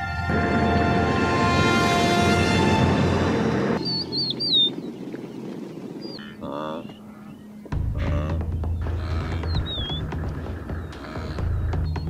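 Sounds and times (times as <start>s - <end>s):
soundtrack music: 0.0s - 4.0s
faint outdoor ambience: 0.0s - 12.0s
bird chirping: 3.8s - 12.0s.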